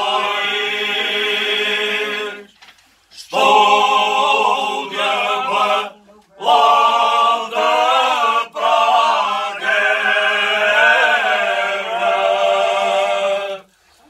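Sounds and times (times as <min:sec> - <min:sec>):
men singing unaccompanied: 0:00.0 - 0:02.5, 0:03.2 - 0:13.7.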